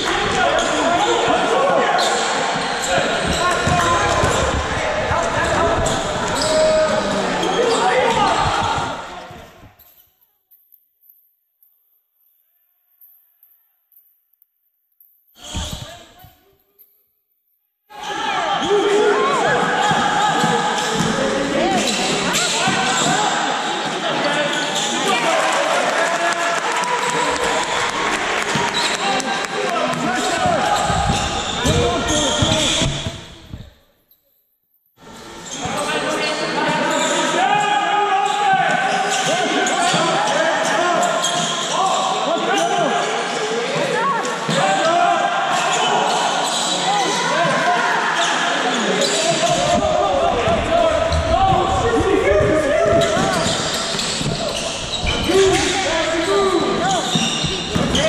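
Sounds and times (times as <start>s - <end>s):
players' indistinct calls: 0.0s - 9.8s, 17.9s - 33.7s, 35.0s - 58.0s
basketball bouncing on court: 2.5s - 6.7s, 29.9s - 33.7s, 57.0s - 58.0s.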